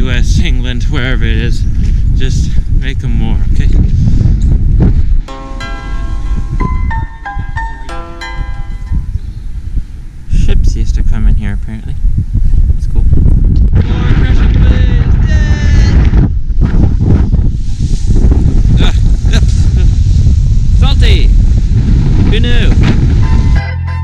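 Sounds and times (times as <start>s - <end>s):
wind buffeting microphone: 0.0s - 24.0s
background music: 5.3s - 9.1s.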